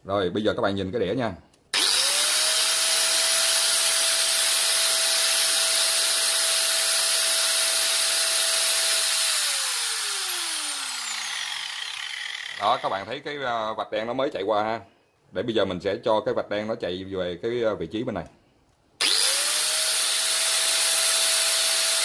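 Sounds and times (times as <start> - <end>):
power tool motor whining: 1.8 - 13.0, 19.0 - 22.0.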